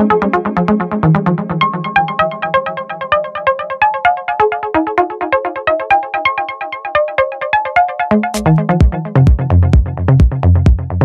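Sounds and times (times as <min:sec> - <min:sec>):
fast staccato synth melody: 0:08.2 - 0:10.9
deep bass: 0:08.4 - 0:11.0.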